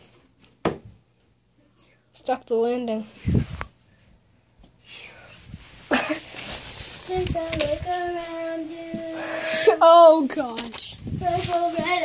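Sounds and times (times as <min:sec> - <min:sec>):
rustling: 0:05.3 - 0:09.2, 0:10.3 - 0:12.0.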